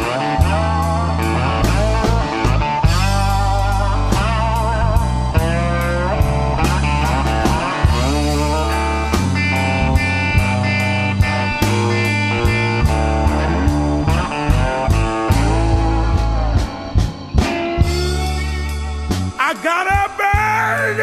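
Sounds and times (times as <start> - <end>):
bass: 0.0 - 21.0
electric guitar bent lead notes: 0.0 - 21.0
steady drum beat: 0.0 - 21.0.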